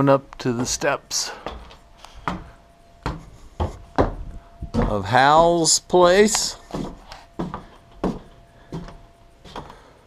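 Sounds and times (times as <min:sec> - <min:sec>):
footsteps on wooden steps: 0:00.5 - 0:05.6, 0:06.3 - 0:09.8.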